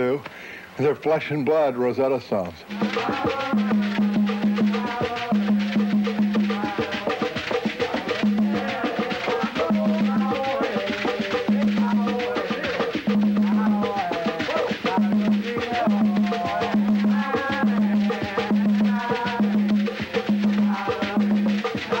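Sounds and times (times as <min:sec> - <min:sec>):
hand drums playing fast rhythm: 0:02.7 - 0:22.0.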